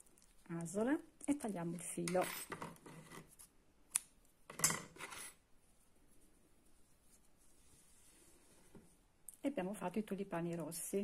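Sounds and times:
rustle of crochet work: 5.0 - 9.1.

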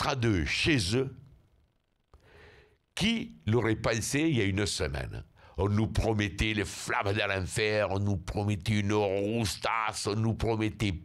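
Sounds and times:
man speaking: 0.0 - 1.3, 3.0 - 11.0
faint breath: 2.1 - 2.9.

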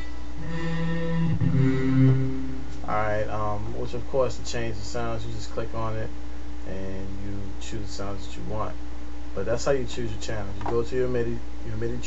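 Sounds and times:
synthesized french horn notes: 0.0 - 3.4.

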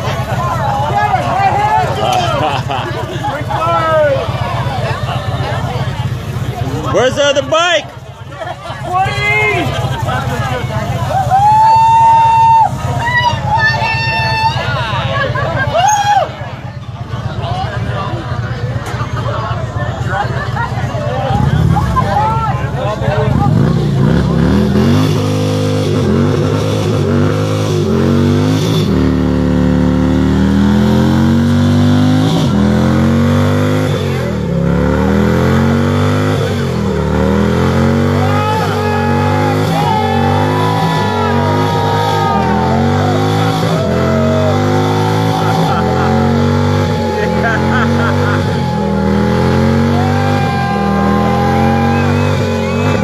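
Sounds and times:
spectators shouting and whooping: 0.0 - 29.0, 29.9 - 53.0
motorcycle engine rumbling: 0.0 - 53.0.

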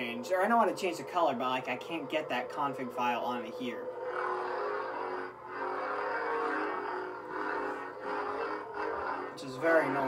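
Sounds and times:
lightsaber electric hum: 0.0 - 10.0.

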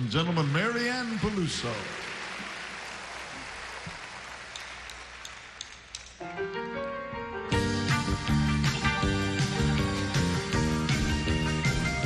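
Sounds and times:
audience applauding: 0.0 - 6.0.

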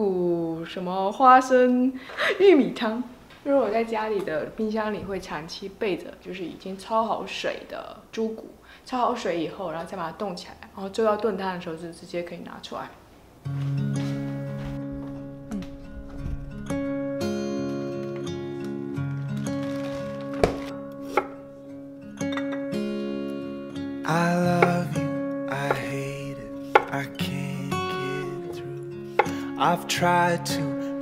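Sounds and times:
acoustic guitar music: 13.4 - 31.0
knife knocking on cutting board: 29.2 - 29.4.

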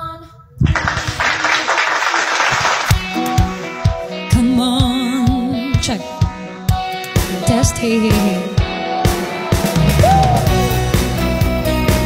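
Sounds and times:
recorded applause: 0.6 - 3.7.

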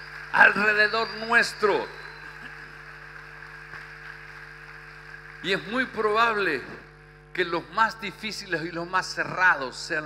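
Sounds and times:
low electrical hum with hiss: 0.0 - 10.0.

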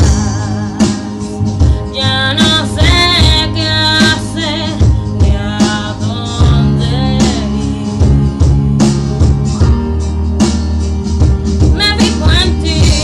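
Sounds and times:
person singing: 0.0 - 8.7, 11.8 - 13.0
song with guitar and beat: 0.0 - 13.0.

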